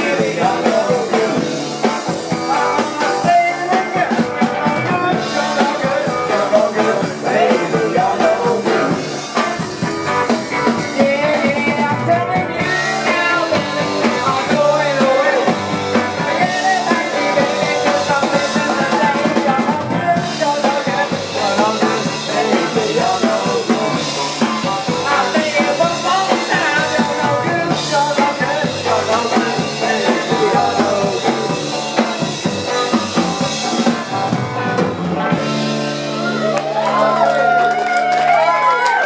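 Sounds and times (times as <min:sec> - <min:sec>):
man singing: 0:00.0 - 0:34.2
bass guitar: 0:00.0 - 0:39.0
drum kit: 0:00.0 - 0:39.0
electric guitar: 0:00.0 - 0:39.0.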